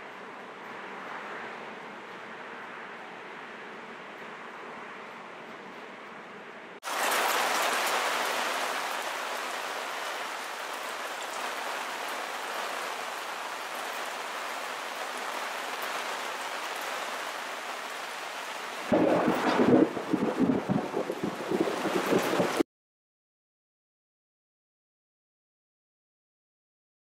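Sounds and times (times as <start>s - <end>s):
rain falling on leaves: 6.8s - 22.6s.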